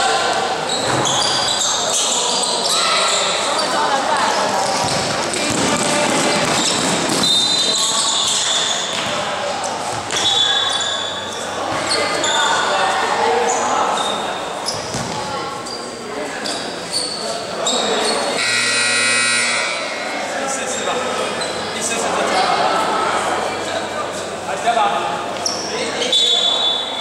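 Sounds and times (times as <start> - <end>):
shoe squeaks on court: 0.7 - 5.5, 6.2 - 12.7, 13.5 - 18.5, 25.4 - 27.0
buzzer: 18.4 - 20.0.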